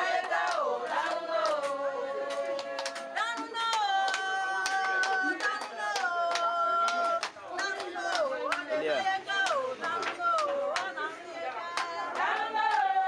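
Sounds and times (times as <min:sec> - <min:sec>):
hands clapping a beat: 0:00.0 - 0:13.0.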